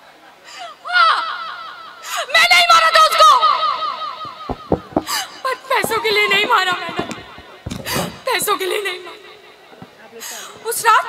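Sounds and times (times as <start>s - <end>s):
woman crying and sobbing: 4.9s - 9.3s.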